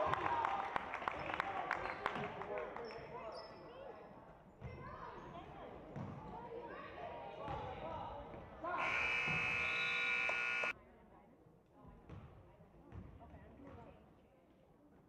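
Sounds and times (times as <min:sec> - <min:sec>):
crowd chatter: 0:05.5 - 0:10.7
scoreboard buzzer: 0:08.8 - 0:10.7.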